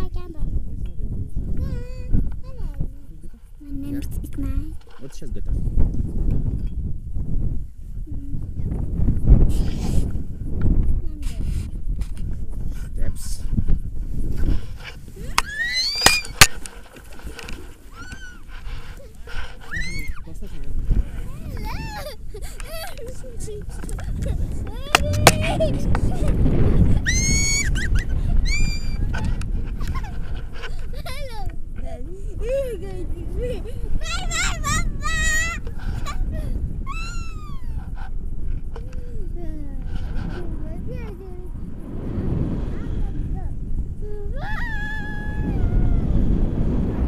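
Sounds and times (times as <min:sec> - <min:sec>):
wind rumble on microphone: 0:00.0 - 0:47.0
child squealing: 0:15.2 - 0:16.5, 0:17.9 - 0:20.3, 0:21.3 - 0:23.0, 0:24.0 - 0:30.1, 0:30.9 - 0:38.0, 0:44.0 - 0:46.2
short high-pitched squeals: 0:19.5 - 0:20.2.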